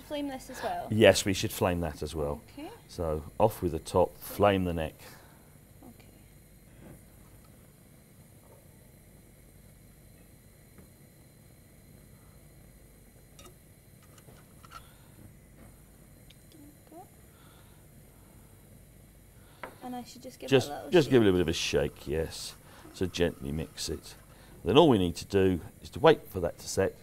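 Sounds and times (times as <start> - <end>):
faint hum: 0.0 - 27.0.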